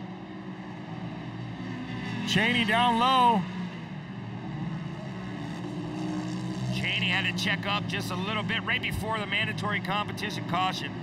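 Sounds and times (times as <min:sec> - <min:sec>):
racing engines droning: 0:00.0 - 0:11.0.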